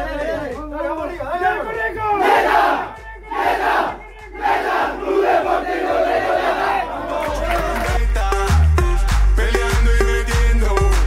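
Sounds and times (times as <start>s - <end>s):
team shouting in unison: 2.0s - 7.7s.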